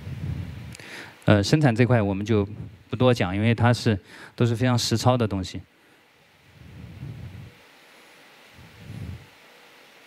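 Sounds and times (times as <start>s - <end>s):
faint steady hiss: 0.0s - 10.0s
soft puffs on microphone: 6.5s - 9.5s.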